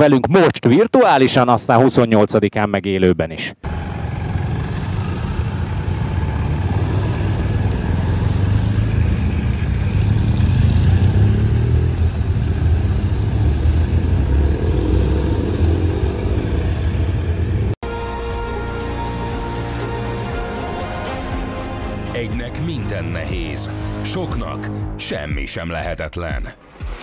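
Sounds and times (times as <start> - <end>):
motorcycles riding past: 3.6 - 17.8.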